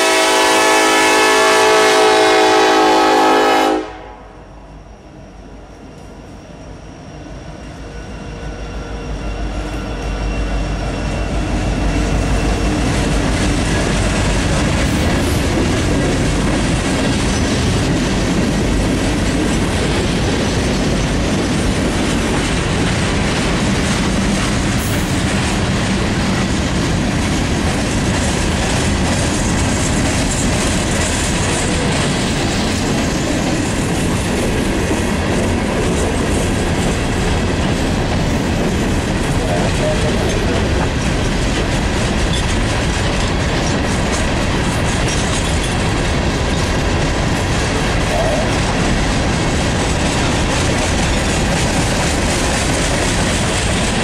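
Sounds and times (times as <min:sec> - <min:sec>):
train wheels on rails: 0:00.0 - 0:54.0.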